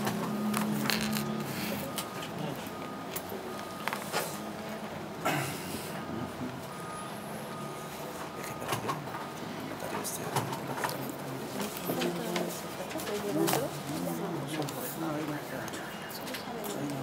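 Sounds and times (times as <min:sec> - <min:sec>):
murmured voices: 0:04.2 - 0:17.0.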